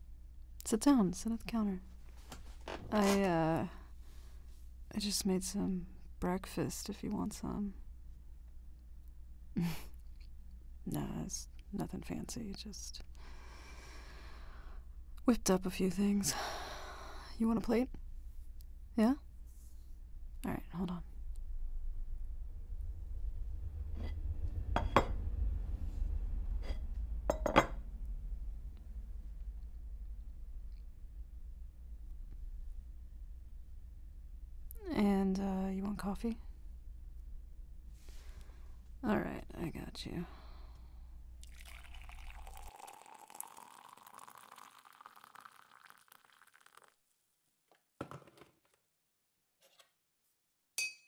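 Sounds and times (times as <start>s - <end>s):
low steady hum: 0.0s - 46.7s
cup clinking as set down: 27.3s - 27.8s
coffee pouring into a cup: 41.4s - 47.0s.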